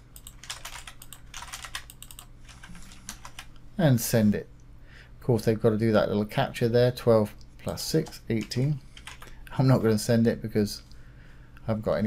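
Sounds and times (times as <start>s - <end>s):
faint low hum: 0.0s - 12.0s
typing on computer keyboard: 0.1s - 3.5s, 8.0s - 9.4s.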